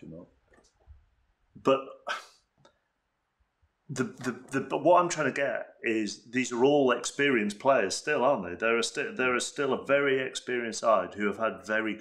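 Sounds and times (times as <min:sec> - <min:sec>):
man speaking: 0:00.0 - 0:00.2, 0:01.6 - 0:02.3, 0:03.9 - 0:12.0.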